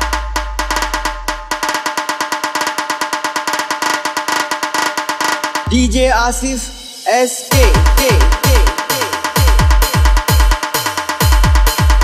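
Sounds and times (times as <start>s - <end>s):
rapid drumming: 0.0s - 12.0s.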